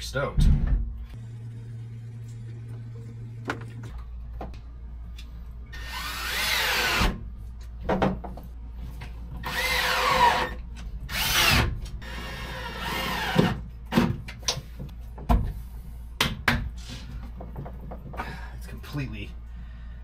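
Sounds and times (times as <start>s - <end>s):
power drill running: 5.8s - 7.1s, 9.4s - 10.5s.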